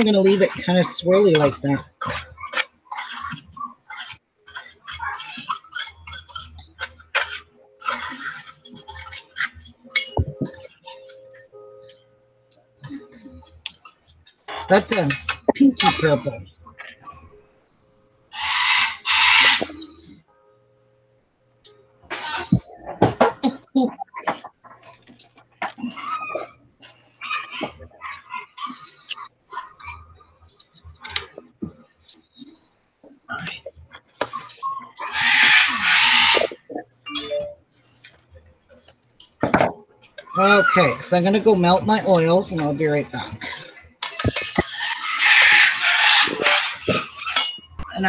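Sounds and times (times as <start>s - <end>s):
metal bowls and utensils clattering: 0.0s - 12.0s, 12.8s - 17.0s, 39.2s - 47.8s
bird chirping and squawking: 18.3s - 20.0s, 44.1s - 47.6s.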